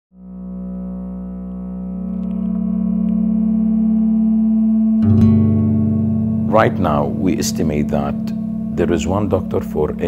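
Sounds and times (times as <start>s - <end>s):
film score drone: 0.2s - 10.0s.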